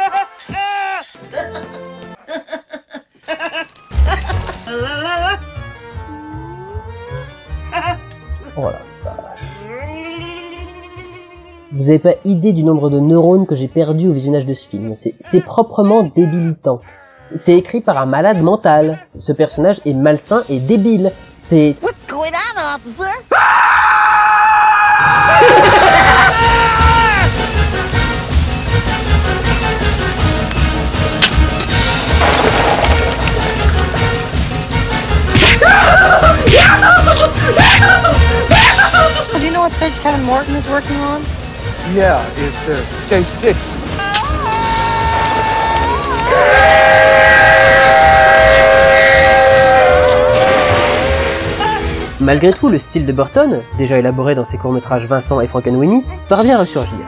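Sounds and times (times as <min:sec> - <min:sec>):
person screaming: 0:23.3 - 0:27.3, 0:35.5 - 0:39.1, 0:44.0 - 0:46.4.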